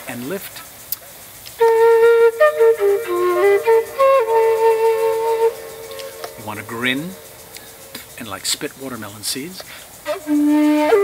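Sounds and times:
bamboo flute playing: 1.6 - 8.2, 10.0 - 11.0.

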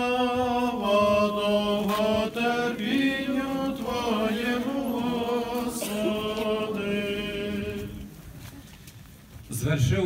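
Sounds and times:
voices chanting in unison: 0.0 - 8.2.

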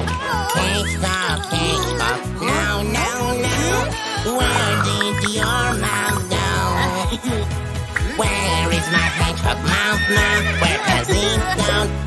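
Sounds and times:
upbeat children's song: 0.0 - 12.0
cartoon horse whinny: 9.9 - 10.9.

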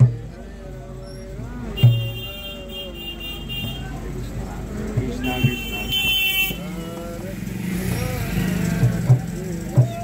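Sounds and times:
street traffic: 0.0 - 10.0
voices: 0.0 - 10.0
vehicle horn: 1.8 - 4.1, 5.2 - 6.8.

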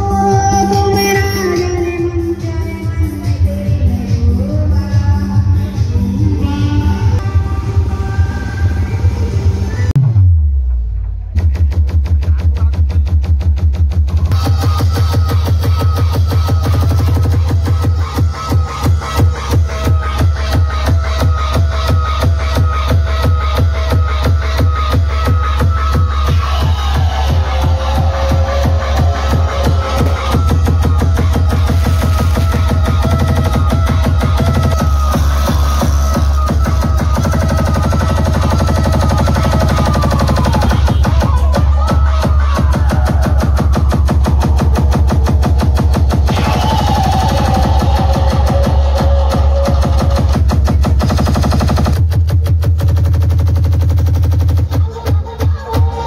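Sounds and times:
electronic dance music heavy bass: 0.0 - 56.0.

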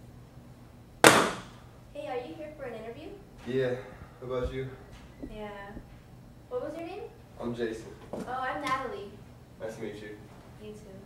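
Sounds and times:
book slapping onto table: 1.0 - 1.5.

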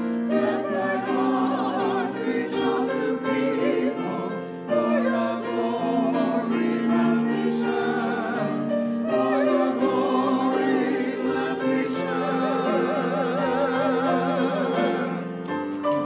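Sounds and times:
church choir singing: 0.0 - 16.0.

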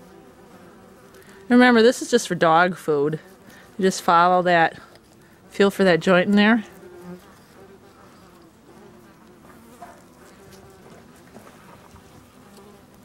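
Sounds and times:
hornets buzzing: 0.0 - 13.0.

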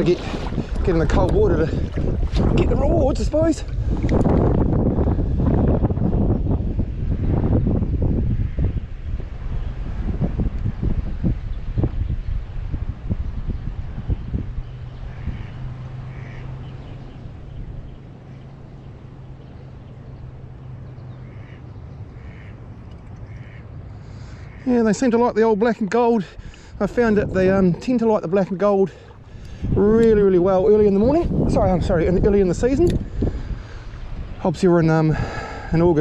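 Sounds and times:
water sloshing around legs: 0.0 - 4.4, 25.8 - 30.2
wind on microphone: 0.0 - 36.0
faint bird calls: 14.7 - 24.8.

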